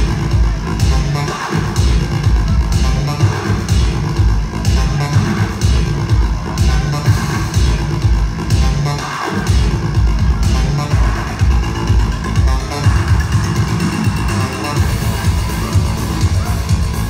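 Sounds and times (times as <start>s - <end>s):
electronic dance music with heavy bass: 0.0s - 17.0s.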